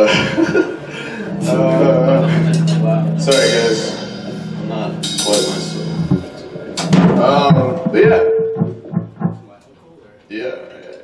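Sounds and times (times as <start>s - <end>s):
bass guitar notes: 0.0s - 9.6s
electric guitar notes: 0.0s - 9.6s
indistinct talk: 0.0s - 11.0s.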